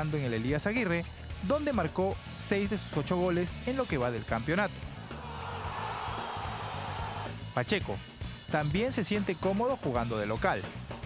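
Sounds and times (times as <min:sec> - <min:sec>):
background music with low bass: 0:00.0 - 0:11.0
stadium crowd cheering: 0:05.0 - 0:07.4.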